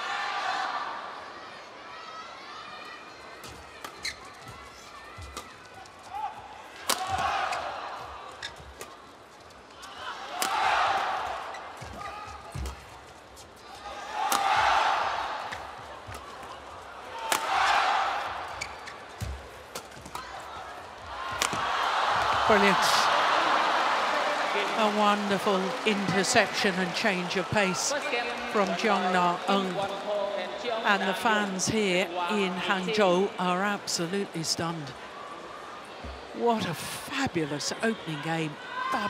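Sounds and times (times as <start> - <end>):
crowd noise: 0.0 - 39.0
rackets striking shuttlecock: 6.8 - 7.3, 14.3 - 14.6, 17.3 - 17.6.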